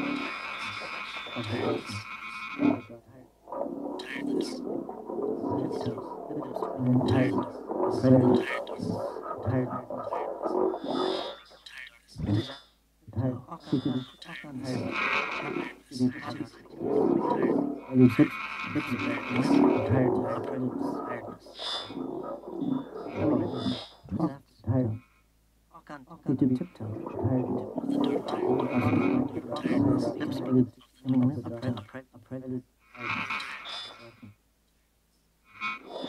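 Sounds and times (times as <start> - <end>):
electroacoustic processed voice music: 0.0 - 34.4, 35.5 - 36.0.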